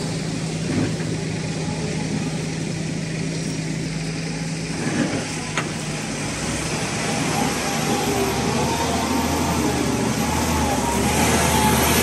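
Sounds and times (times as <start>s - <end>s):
tractor engine under load: 0.0s - 12.0s.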